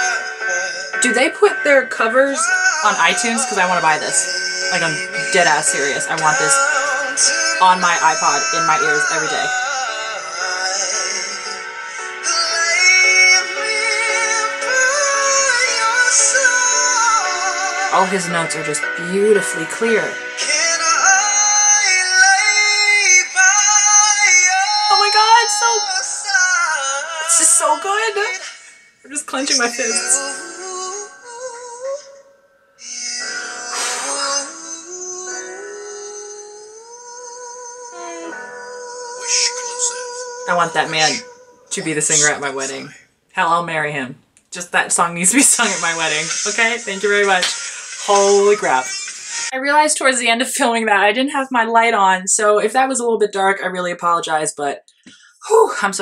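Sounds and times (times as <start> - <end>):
man singing a slow ballad: 0.0 - 1.0, 2.4 - 18.0, 20.2 - 28.8, 29.5 - 41.7
backing music: 0.0 - 32.2, 33.1 - 43.6, 44.6 - 49.5.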